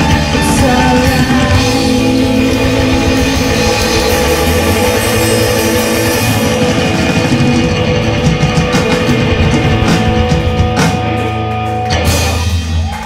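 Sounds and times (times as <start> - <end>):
bass guitar: 0.0 - 13.0
drum kit with cymbals: 0.0 - 13.0
electric guitars: 0.0 - 13.0.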